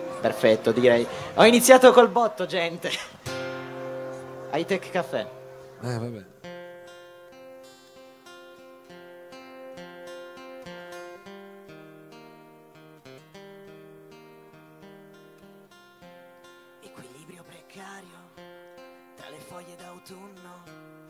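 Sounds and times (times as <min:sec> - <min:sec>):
acoustic guitar strummed chords: 0:03.1 - 0:21.0.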